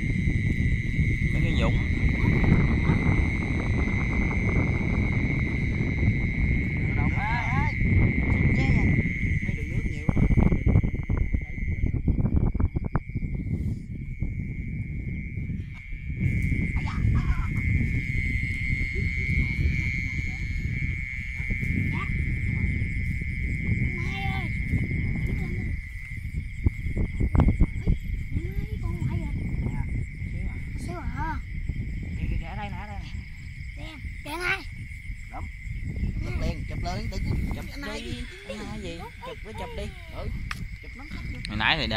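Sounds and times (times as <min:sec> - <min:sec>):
frogs and insects calling: 0:00.0 - 0:41.9.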